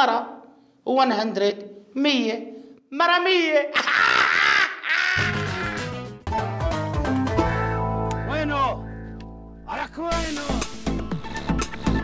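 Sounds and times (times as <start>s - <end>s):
music with steady bass line: 10.1s - 12.0s.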